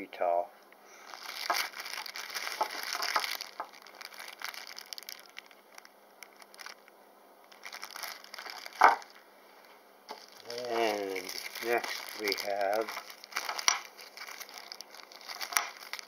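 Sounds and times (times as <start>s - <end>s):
plastic bag crinkling: 1.0s - 9.2s, 10.1s - 16.0s.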